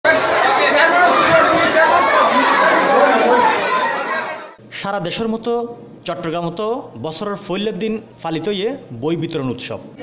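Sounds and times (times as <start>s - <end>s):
crowd chattering: 0.0s - 4.6s.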